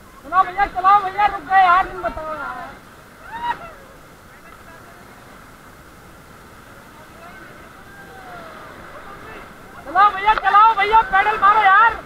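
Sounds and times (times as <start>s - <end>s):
faint voices calling: 0.0s - 12.0s
whitewater rushing: 0.0s - 12.0s.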